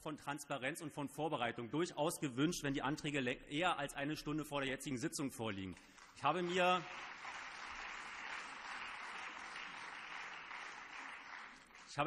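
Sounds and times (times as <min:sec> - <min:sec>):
applause: 0:05.7 - 0:12.0.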